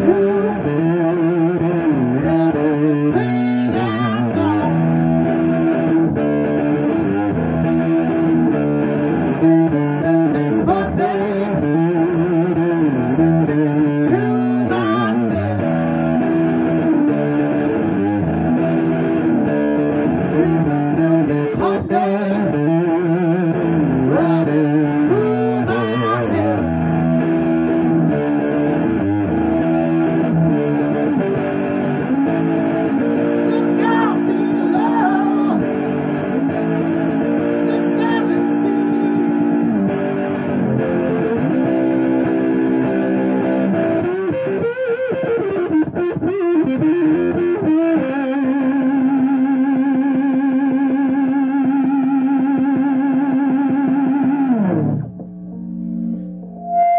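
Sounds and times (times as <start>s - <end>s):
electric guitar lead: 0.0s - 56.9s.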